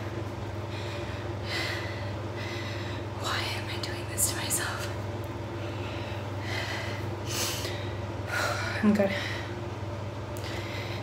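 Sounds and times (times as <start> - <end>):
steady low hum: 0.0 - 11.0
woman breathing heavily: 0.6 - 3.6, 5.5 - 9.8, 10.4 - 11.0.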